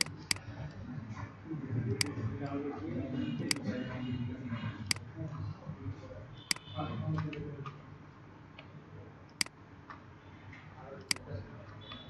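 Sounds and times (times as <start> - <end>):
computer mouse clicking: 0.0 - 0.4.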